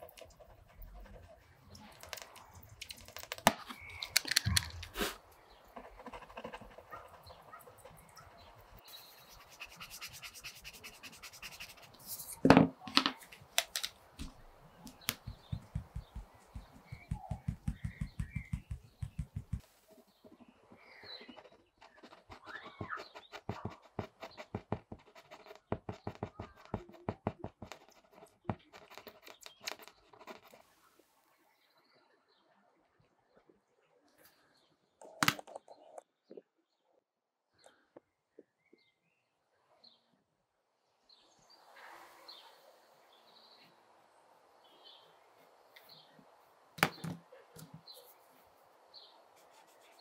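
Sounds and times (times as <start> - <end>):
pencil scratching on paper: 0.0 - 2.2, 5.8 - 12.4, 15.1 - 19.6, 20.4 - 30.7, 49.3 - 50.0
pencil tap: 14.9 - 19.6.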